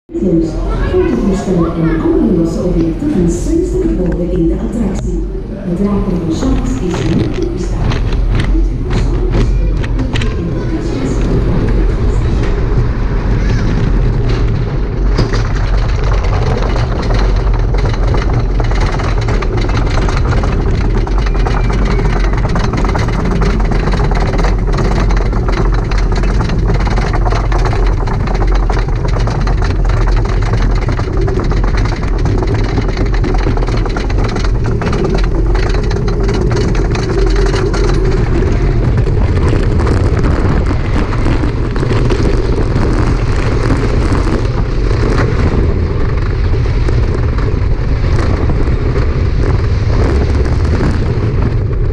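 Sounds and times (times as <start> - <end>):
heavy low rumble: 0.0 - 51.9
lift chain clanking rattle: 13.6 - 45.5
stream of clicks: 13.7 - 51.9.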